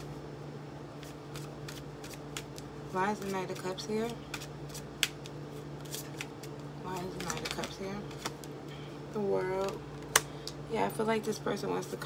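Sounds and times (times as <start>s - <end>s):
steady low hum: 0.0s - 12.0s
tarot cards being handled: 0.9s - 8.7s
card snapping: 4.3s - 6.3s.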